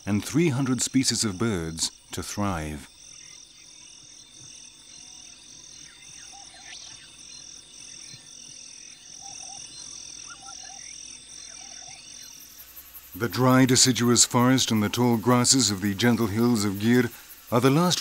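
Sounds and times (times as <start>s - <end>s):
insect chirring: 0.0s - 18.0s
low croaking calls: 0.0s - 18.0s.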